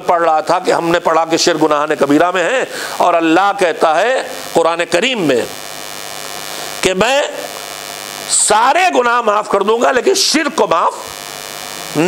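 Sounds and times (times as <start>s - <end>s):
man speaking: 0.0s - 5.6s, 6.8s - 7.5s, 8.3s - 11.1s
electrical mains hum: 0.0s - 12.0s.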